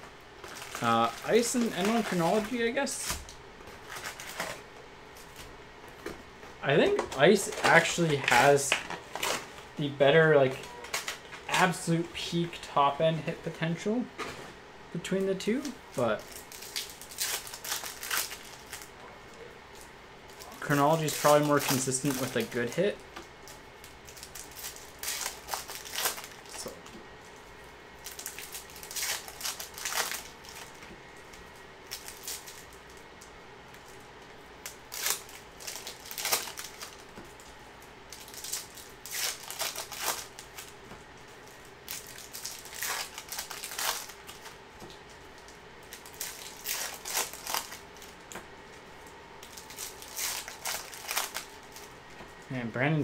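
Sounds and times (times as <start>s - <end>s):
cards rustling: 0.4s - 4.6s, 6.7s - 12.6s, 19.7s - 22.9s, 38.1s - 48.8s, 49.4s - 52.3s
foil wrappers crinkling and tearing: 0.4s - 5.4s, 6.7s - 12.7s, 15.0s - 19.0s, 19.7s - 33.1s, 34.6s - 52.0s.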